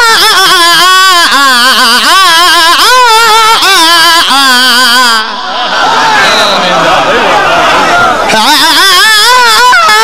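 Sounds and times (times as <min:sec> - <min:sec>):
man chanting into a microphone: 0:08.3 - 0:10.0.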